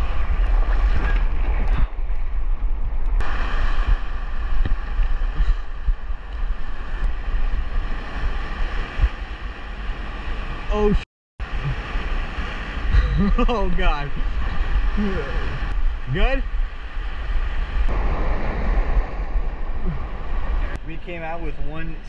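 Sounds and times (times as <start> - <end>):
wind rumbling on microphone: 0.0 - 22.0
surf churning over rocks: 3.2 - 22.0.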